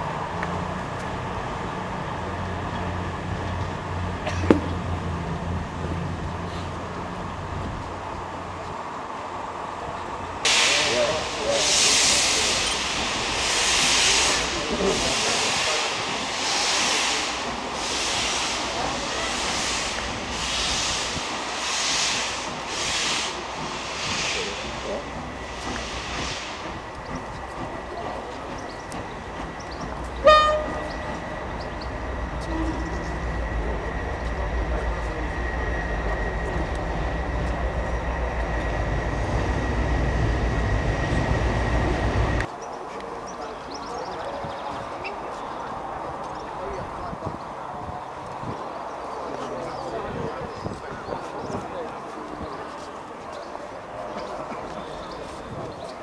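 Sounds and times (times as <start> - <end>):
steam locomotive hissing steam: 10.4 - 42.5
steam locomotive whistle blast: 30.2 - 31.0.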